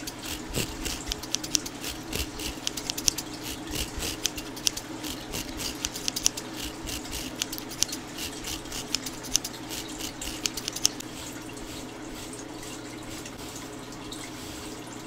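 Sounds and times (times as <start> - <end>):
brush scratching microphone grille: 0.0 - 13.7, 14.4 - 14.8.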